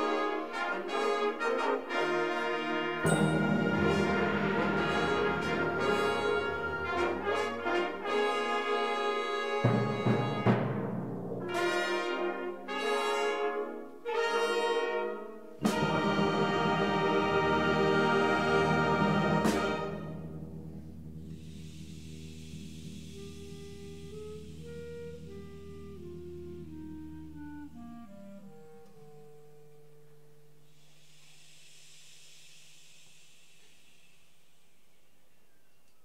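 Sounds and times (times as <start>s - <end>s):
concert band playing: 0.0s - 21.7s.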